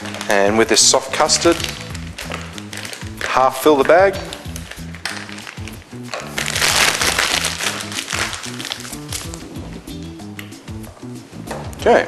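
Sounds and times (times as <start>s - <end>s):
piping bag crinkling: 0.0s - 9.6s
background music: 0.0s - 12.0s.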